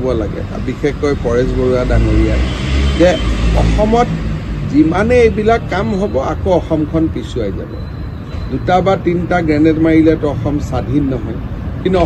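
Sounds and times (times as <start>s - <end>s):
man speaking into microphones: 0.0s - 7.9s, 8.5s - 12.0s.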